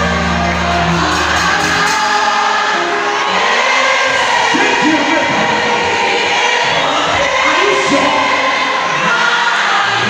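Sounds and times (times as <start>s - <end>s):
crowd singing along: 0.0s - 10.0s
gospel music with singing: 0.0s - 10.0s.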